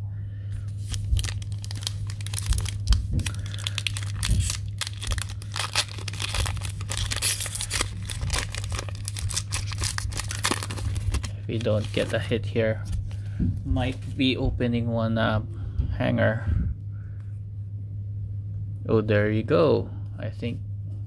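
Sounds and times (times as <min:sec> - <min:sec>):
foil wrapper crinkling and tearing: 0:00.8 - 0:12.3.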